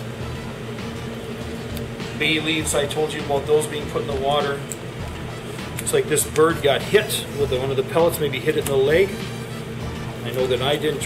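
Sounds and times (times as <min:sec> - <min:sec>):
kitchen hum with faint hiss: 0:00.0 - 0:11.0.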